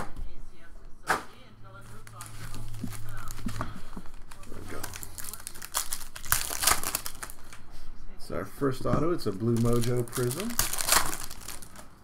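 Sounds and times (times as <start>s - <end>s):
foil pack tearing and crinkling: 2.0s - 7.6s, 9.3s - 12.0s.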